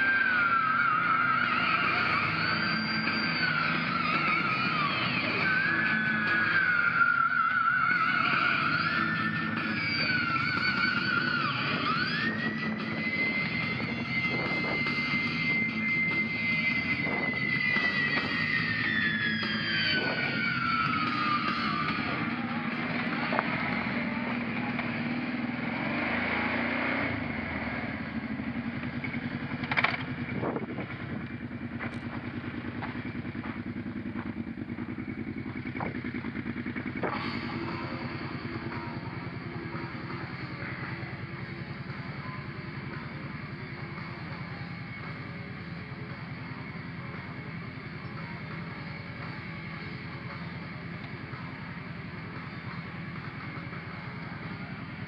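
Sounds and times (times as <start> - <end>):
music track: 0.0 - 27.6
atv engine running: 0.0 - 55.0.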